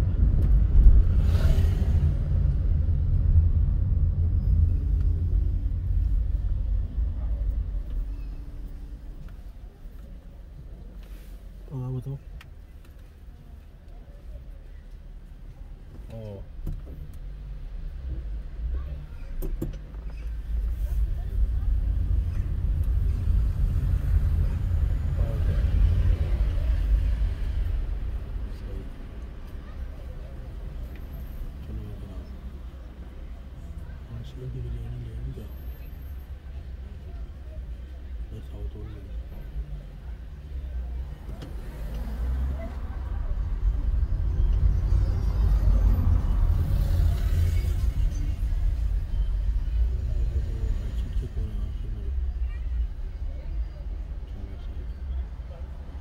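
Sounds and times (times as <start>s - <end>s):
car driving rumble from inside: 0.0s - 56.0s.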